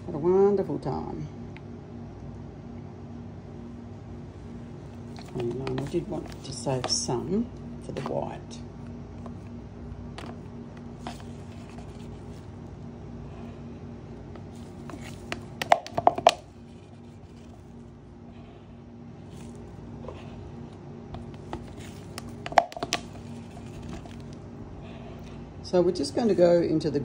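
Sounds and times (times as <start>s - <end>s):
steady low hum: 0.0s - 27.0s
plastic cups clicking and knocking: 14.8s - 16.5s, 21.2s - 24.3s.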